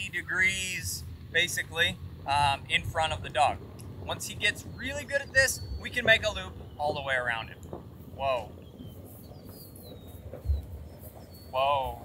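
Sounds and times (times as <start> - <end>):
low outdoor rumble: 0.0 - 12.0
dull low thump: 2.2 - 11.6
distant bird whistle: 4.1 - 12.0.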